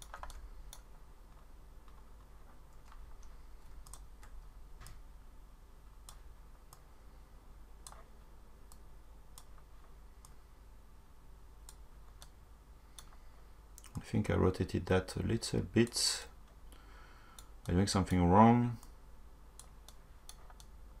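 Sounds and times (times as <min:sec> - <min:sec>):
mouse and keyboard clicks: 0:00.0 - 0:02.0, 0:07.8 - 0:08.1
low steady hum: 0:00.0 - 0:21.0.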